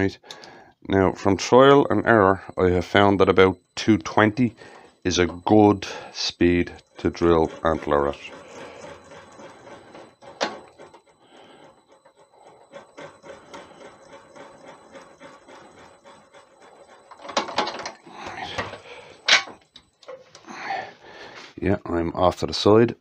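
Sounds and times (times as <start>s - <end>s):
faint motor hum: 0.0s - 23.0s
drill bit scratchy ticking: 0.2s - 20.5s.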